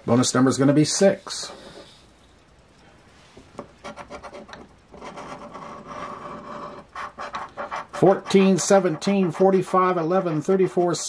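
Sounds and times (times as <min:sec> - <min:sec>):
scratching lottery ticket: 0:03.8 - 0:11.0.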